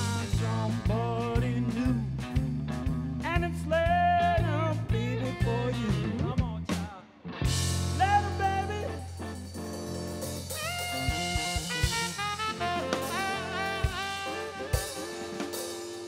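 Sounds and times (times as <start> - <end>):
blues band playing: 0.0 - 16.0.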